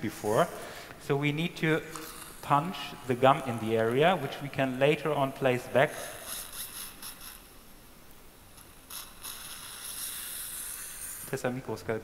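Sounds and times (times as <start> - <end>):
dental equipment whirring: 0.0 - 7.5, 8.6 - 11.5.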